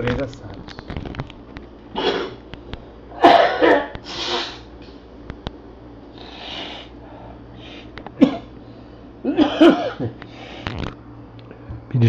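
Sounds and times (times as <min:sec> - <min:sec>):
man coughing: 0:03.2 - 0:04.0, 0:08.2 - 0:08.5, 0:09.2 - 0:10.2.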